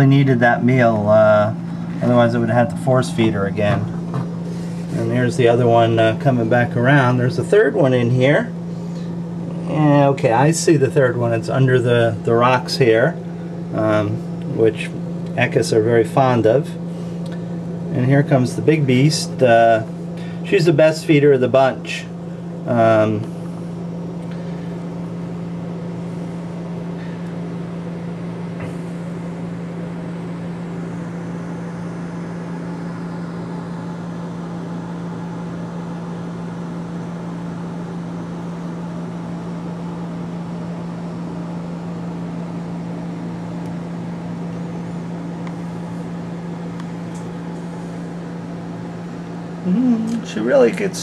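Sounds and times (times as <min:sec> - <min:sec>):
low electrical hum: 0:00.0 - 0:51.0.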